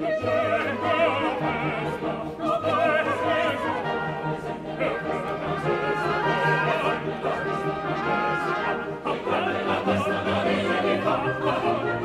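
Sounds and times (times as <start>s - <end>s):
orchestral music with brass: 0.0s - 12.0s.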